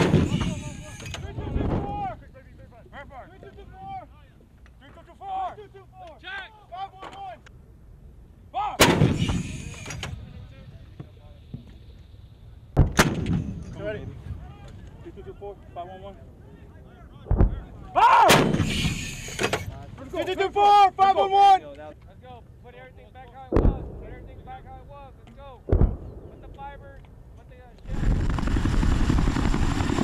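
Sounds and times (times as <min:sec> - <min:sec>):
howitzer blasts with rumble: 0:00.0 - 0:02.6, 0:08.6 - 0:10.8, 0:11.4 - 0:14.6, 0:16.2 - 0:20.2, 0:23.4 - 0:30.0.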